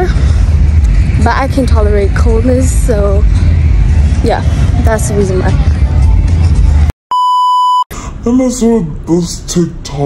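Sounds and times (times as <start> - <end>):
loud low rumble: 0.0 - 6.9
steady test tone beep: 7.1 - 7.9.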